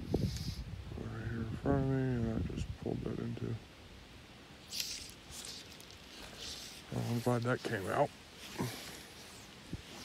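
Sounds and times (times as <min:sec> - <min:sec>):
fly line swishing: 0:04.6 - 0:10.0.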